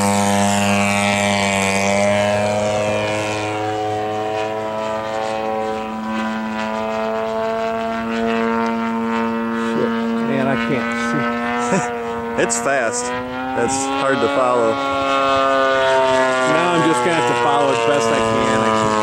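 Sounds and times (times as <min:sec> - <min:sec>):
model plane engine drone: 0:00.0 - 0:19.0.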